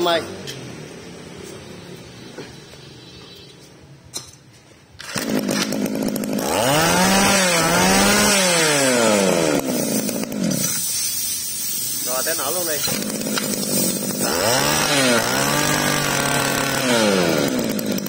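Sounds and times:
brush cutter engine revving: 5.0 - 11.2, 11.9 - 18.0.

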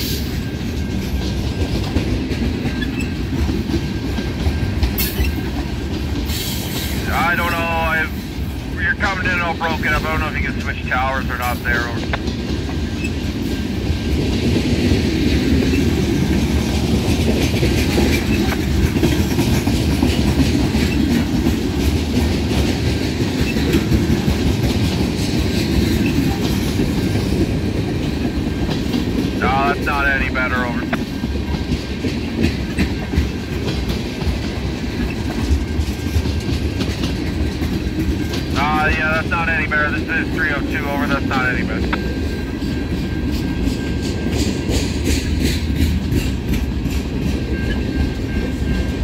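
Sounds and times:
freight train cars rumbling: 0.0 - 49.0
wheels clacking over rail joints: 12.0 - 29.4, 30.8 - 38.6.

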